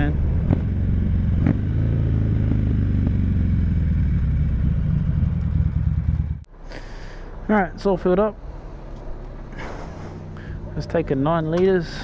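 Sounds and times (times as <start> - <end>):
motorcycle engine running: 0.0 - 6.5.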